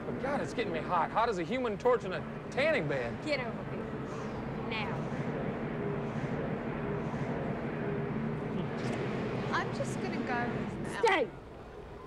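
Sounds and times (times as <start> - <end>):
low hum and murmur: 0.0 - 12.0.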